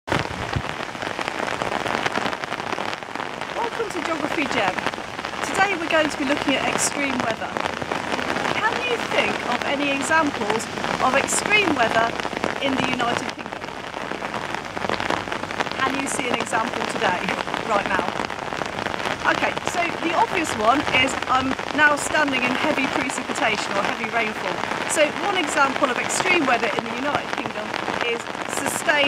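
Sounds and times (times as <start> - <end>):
heavy rain: 0.0 - 29.0
woman speaking: 3.6 - 4.8, 5.4 - 7.6, 8.6 - 13.6, 15.8 - 18.2, 19.2 - 29.0
woman's voice: 3.6 - 13.6, 15.8 - 18.2, 19.2 - 29.0.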